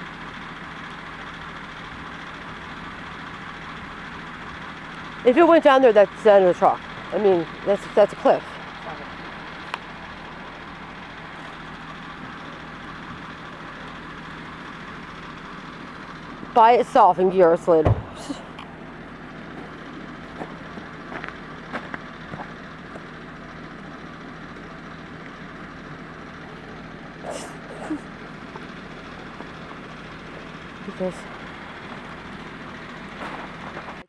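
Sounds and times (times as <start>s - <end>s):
vehicle engines idling: 0.0s - 34.0s.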